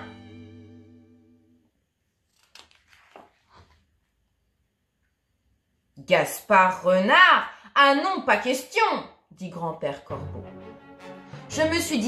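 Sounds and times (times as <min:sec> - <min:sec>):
background music chord: 0:00.0 - 0:01.6, 0:10.1 - 0:12.0
paper page rustling: 0:02.2 - 0:04.1.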